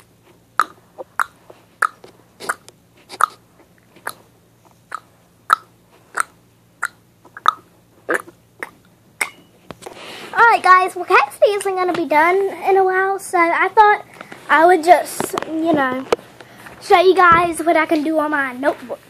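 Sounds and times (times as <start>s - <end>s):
child making mouth clicks: 4.9s - 9.4s.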